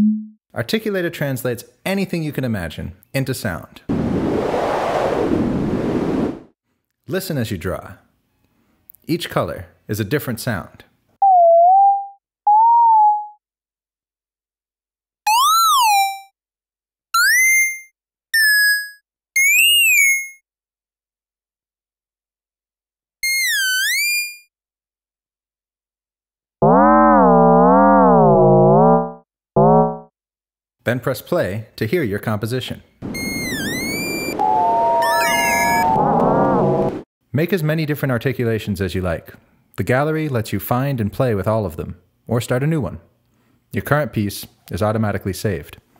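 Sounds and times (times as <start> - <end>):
rough low drone: 33.0 - 37.0
synthesized gliding tones: 33.0 - 37.0.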